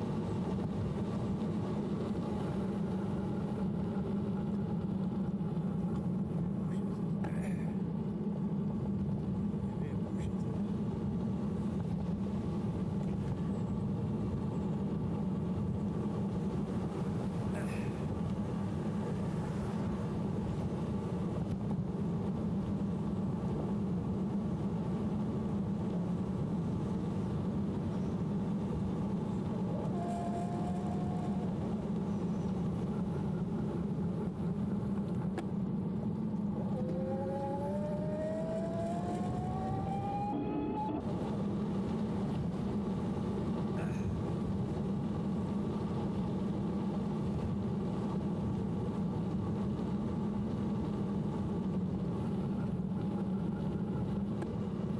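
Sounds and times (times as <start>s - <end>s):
electric motor whining: 29.7s - 31.6s, 36.6s - 41.0s
wind rushing: 36.1s - 42.2s.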